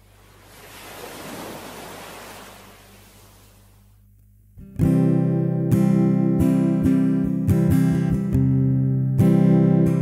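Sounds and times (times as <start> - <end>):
wave washing in: 0.0 - 3.7.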